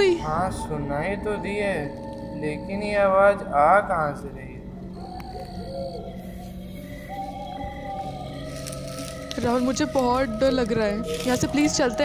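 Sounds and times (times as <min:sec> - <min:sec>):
eerie droning music: 0:00.0 - 0:12.0
owl hooting: 0:00.0 - 0:12.0.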